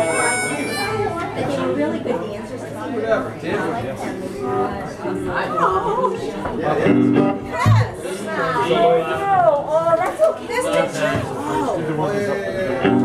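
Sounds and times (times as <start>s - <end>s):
live band music: 0.0s - 1.4s, 6.9s - 8.0s
people chattering: 0.0s - 13.0s
low bass note: 7.3s - 8.0s.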